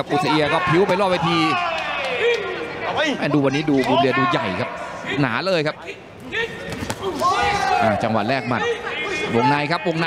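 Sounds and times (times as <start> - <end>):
man talking: 2.2 - 10.0.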